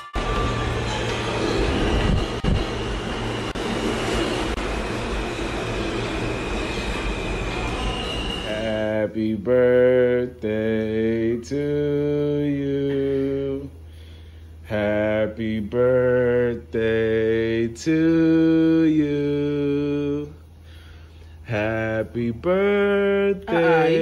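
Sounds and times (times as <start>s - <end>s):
subway train rumbling on rails: 0.0s - 8.6s
faint high squeal: 5.2s - 8.9s
person singing long held notes: 8.5s - 13.8s, 14.7s - 20.4s, 21.5s - 24.0s.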